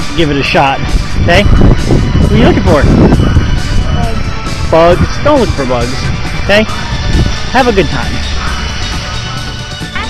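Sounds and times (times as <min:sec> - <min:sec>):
wind buffeting microphone: 0:00.0 - 0:09.7.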